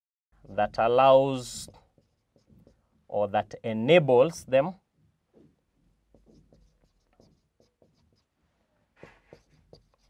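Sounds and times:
marker pen on whiteboard: 0.4s - 4.2s, 4.8s - 10.0s.

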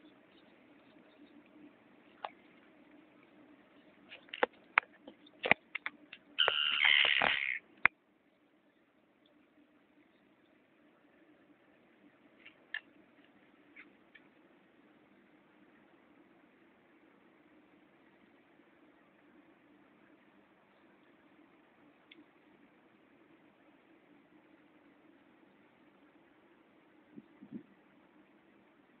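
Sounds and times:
faint low hum: 0.0s - 29.0s
tern calls: 6.4s - 7.7s.

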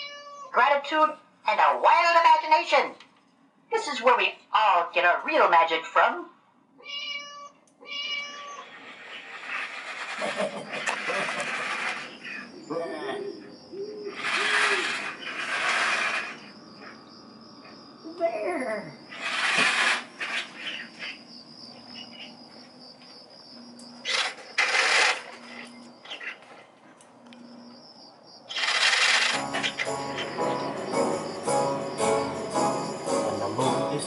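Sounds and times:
witch cackle: 10.1s - 15.1s
loud hissing bursts: 14.0s - 16.6s, 19.1s - 20.6s.

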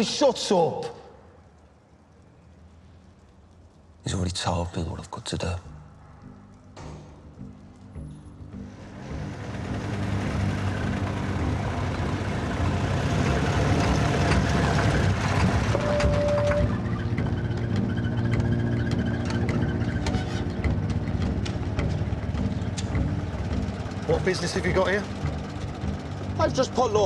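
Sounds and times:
truck engine running: 7.1s - 27.0s
brief squeal: 15.7s - 20.4s.

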